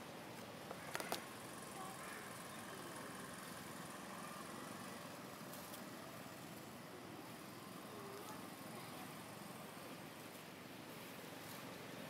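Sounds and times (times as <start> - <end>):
outdoor background ambience: 0.0 - 12.0.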